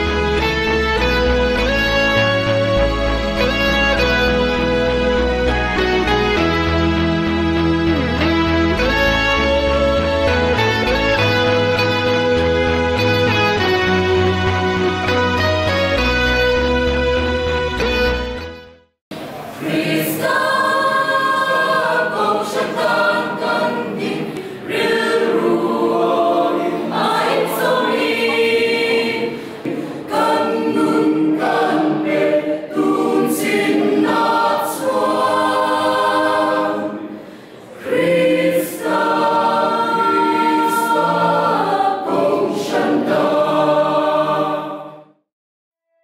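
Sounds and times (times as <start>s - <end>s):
mixed choir singing unaccompanied: 19.2s - 45.2s.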